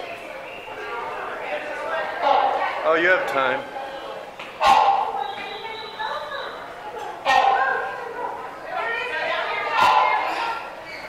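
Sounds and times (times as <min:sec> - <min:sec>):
indistinct voices in a hall: 0:00.0 - 0:11.0.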